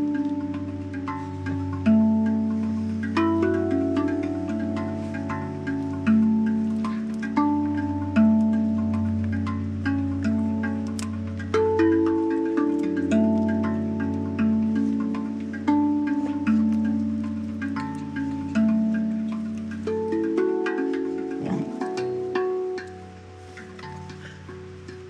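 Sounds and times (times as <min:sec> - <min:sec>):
handpan melody: 0:00.0 - 0:25.0.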